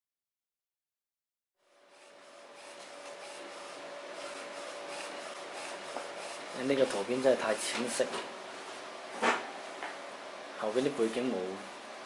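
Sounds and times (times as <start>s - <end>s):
faint printer whine: 1.6s - 12.0s
printer carriage hissing: 1.9s - 8.1s.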